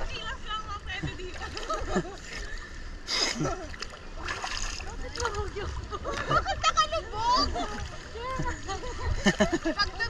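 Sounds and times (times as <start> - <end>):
low rumble of moving water: 0.0 - 10.0
seawater splashing: 0.0 - 10.0.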